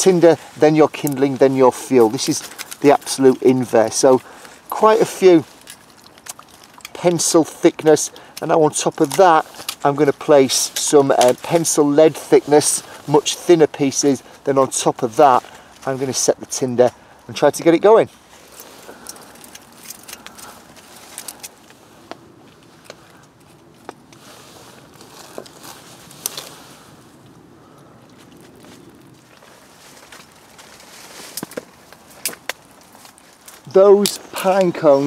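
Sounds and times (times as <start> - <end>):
bark tinder crackling: 0.0 - 35.0.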